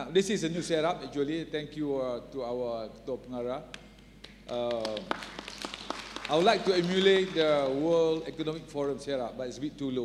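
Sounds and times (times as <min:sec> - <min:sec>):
man speaking into microphone: 0:00.0 - 0:03.7, 0:04.5 - 0:05.1, 0:06.3 - 0:10.0.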